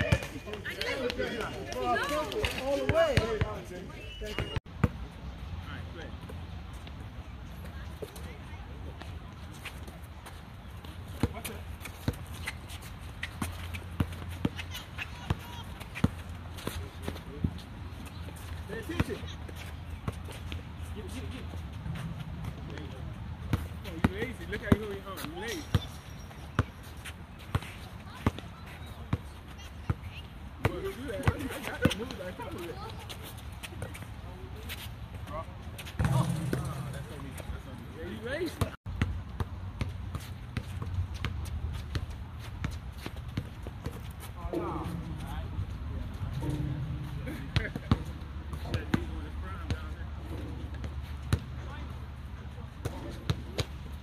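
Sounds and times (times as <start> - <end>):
players calling out: 0.0 - 4.6.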